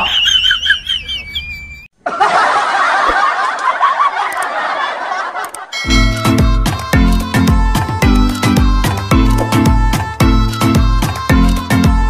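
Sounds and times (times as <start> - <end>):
high-pitched giggling laughter: 0.0 - 6.2
busy background music: 5.9 - 12.0.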